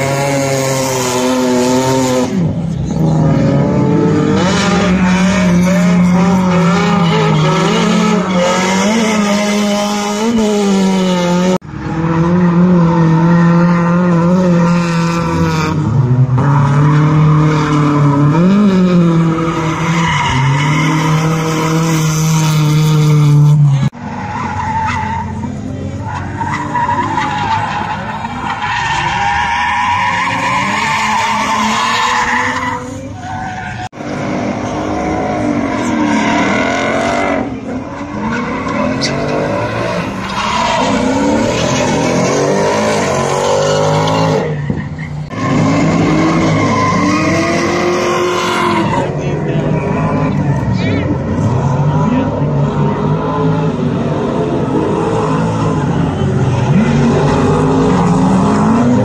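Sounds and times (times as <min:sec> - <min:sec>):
car engines revving: 0:00.0 - 0:59.0.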